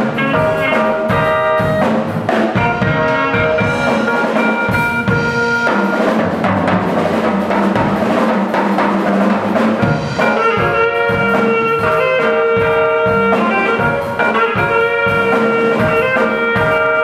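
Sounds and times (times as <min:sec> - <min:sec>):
saxophone: 0:00.0 - 0:06.6, 0:09.8 - 0:17.0
drum beat: 0:00.0 - 0:17.0
electric keyboard: 0:00.0 - 0:17.0.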